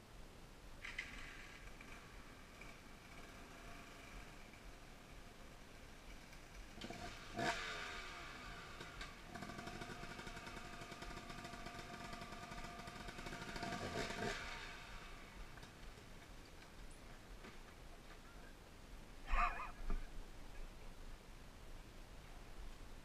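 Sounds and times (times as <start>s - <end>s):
dirt bike engine revving: 6.4s - 15.6s.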